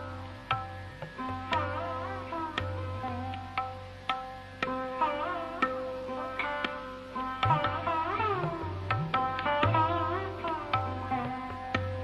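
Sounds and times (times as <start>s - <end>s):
tabla drums: 0.0s - 12.0s.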